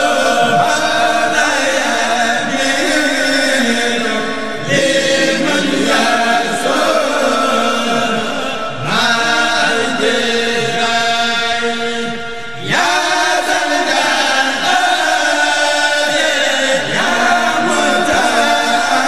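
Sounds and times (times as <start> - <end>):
men chanting in chorus: 0.0 - 19.0.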